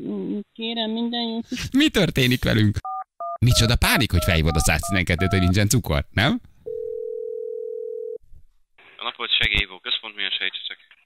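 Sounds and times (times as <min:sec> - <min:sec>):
telephone line beep: 0:02.9 - 0:05.6.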